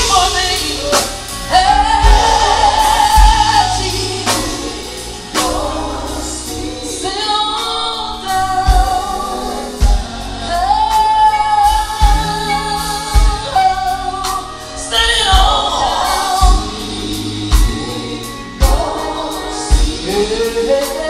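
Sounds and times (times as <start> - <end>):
drum hits: 0.0 - 6.3
live band playing: 0.0 - 21.0
women singing in harmony: 0.0 - 21.0.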